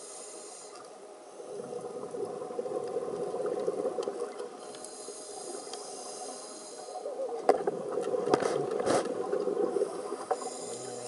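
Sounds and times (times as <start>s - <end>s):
underwater bubbling: 0.0s - 11.0s.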